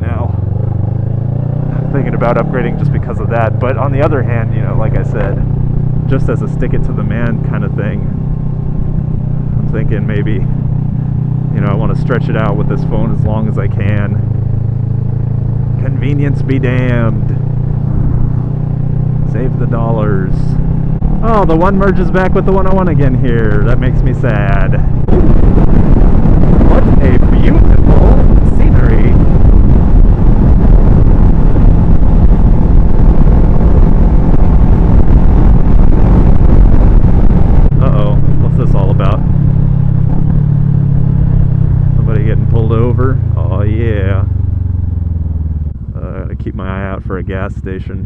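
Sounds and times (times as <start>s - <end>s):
motorcycle engine: 0.0s - 48.0s
wind rush on microphone: 0.0s - 48.0s.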